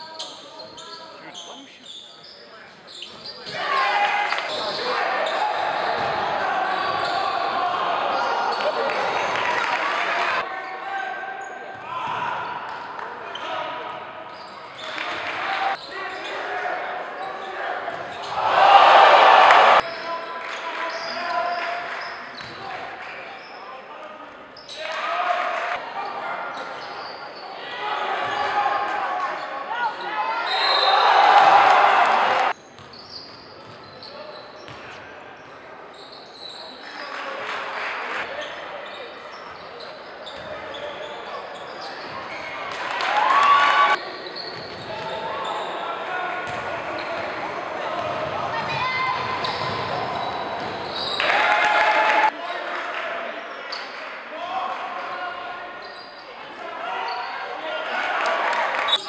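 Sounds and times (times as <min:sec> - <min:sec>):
chatter of spectators: 0:00.0 - 0:59.0
bursts of crowd voices: 0:03.4 - 0:24.1, 0:24.8 - 0:32.6, 0:40.5 - 0:59.0.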